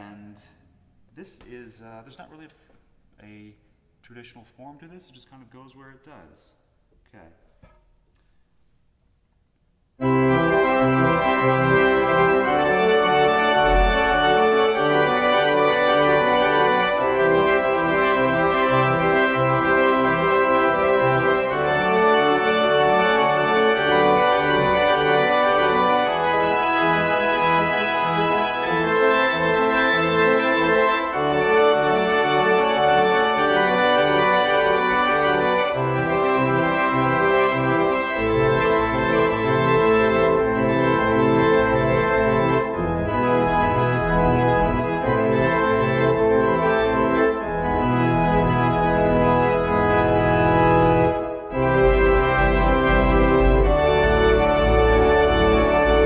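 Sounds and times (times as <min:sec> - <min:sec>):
electronic organ chords: 0:09.9 - 0:56.0
deep bass organ notes: 0:10.0 - 0:56.0.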